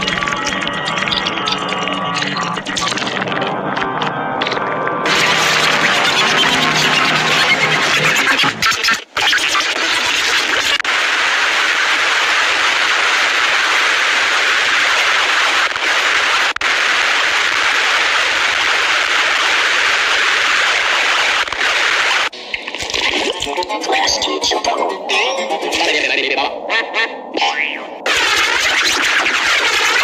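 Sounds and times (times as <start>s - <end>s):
harsh static noise: 0.0s - 30.0s.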